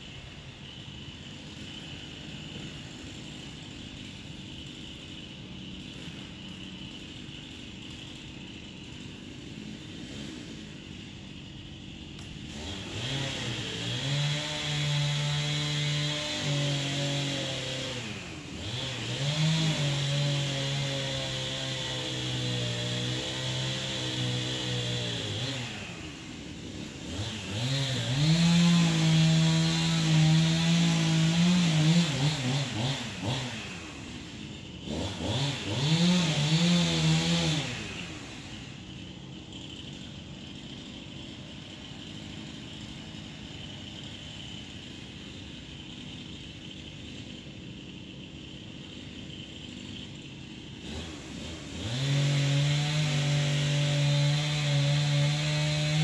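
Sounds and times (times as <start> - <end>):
chainsaw engine revving: 0.0 - 56.0.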